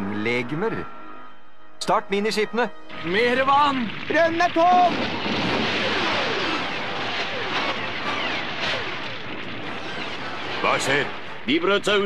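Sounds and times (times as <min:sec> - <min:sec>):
rushing blast noise: 0:02.9 - 0:11.6.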